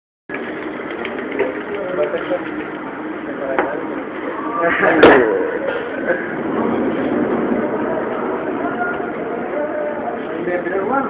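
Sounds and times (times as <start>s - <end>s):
espresso machine running: 0.3s - 3.6s.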